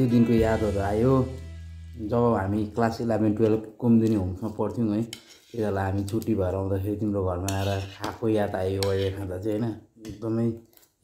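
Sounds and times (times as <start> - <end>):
man talking: 0.0 - 10.6.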